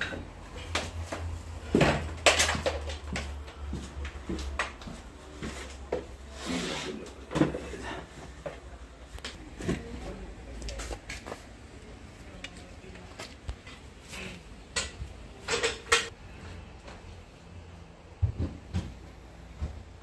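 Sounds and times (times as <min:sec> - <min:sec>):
power tools knocking and clattering: 0:14.8 - 0:16.1.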